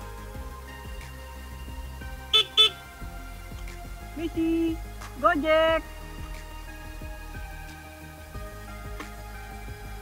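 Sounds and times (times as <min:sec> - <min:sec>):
background music: 0:00.0 - 0:10.0
motorbike horn beeps: 0:02.4 - 0:02.8.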